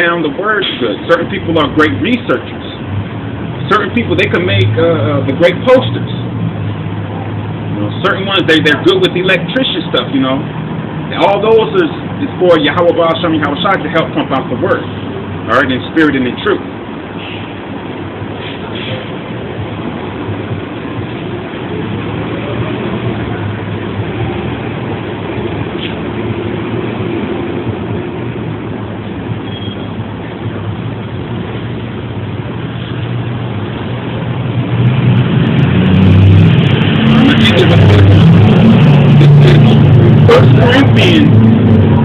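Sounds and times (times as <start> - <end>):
heavy vehicle engine running: 0.0 - 42.0
road traffic hum: 0.0 - 42.0.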